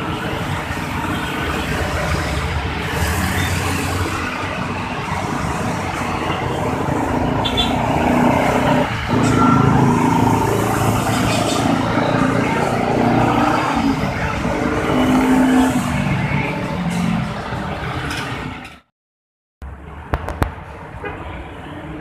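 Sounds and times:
bus passing with engine running: 0.0s - 18.8s
motorcycles and cars passing: 0.0s - 18.8s.

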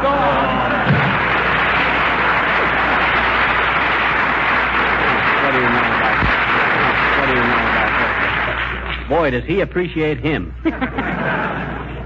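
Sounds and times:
audience applauding: 0.0s - 9.3s.

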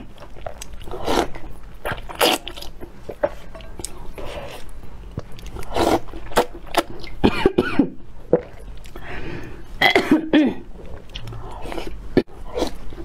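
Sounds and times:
person slurping noodles: 0.8s - 1.4s, 5.5s - 7.1s, 10.8s - 12.8s.

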